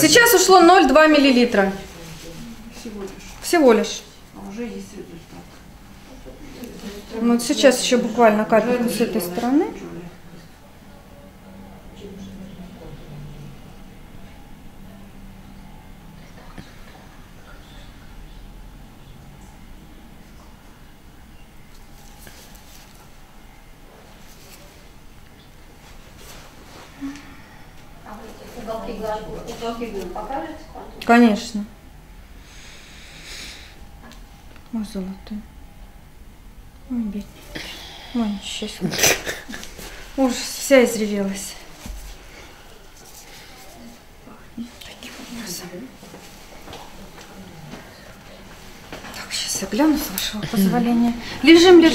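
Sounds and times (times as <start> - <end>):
low steady hum: 0.0 - 51.9
soft murmuring or whispering: 16.0 - 18.4, 41.3 - 51.7.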